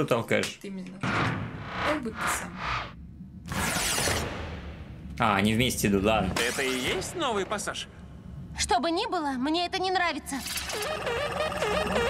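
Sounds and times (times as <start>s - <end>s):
sci-fi sound effects: 10.4s - 12.0s
cartoon music: 10.7s - 12.0s.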